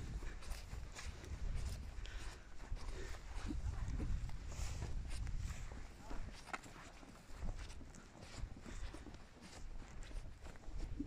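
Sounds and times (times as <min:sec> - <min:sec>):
wind buffeting microphone: 0:00.0 - 0:06.4
footsteps on dry grass: 0:00.0 - 0:11.0.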